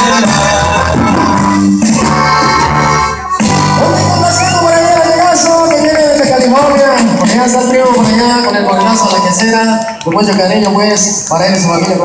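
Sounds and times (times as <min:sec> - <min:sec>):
live band playing amplified music: 0:00.0 - 0:12.0.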